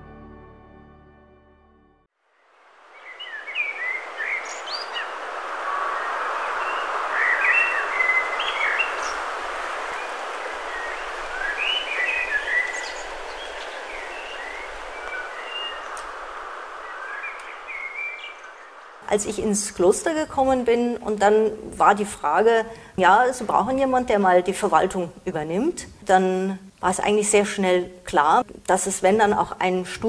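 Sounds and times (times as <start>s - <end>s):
small birds chirping: 3.0s - 22.5s.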